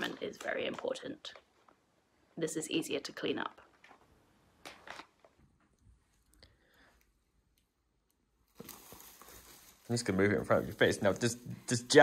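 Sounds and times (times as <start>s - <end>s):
tissue paper crinkling and rustling: 8.5s - 11.5s.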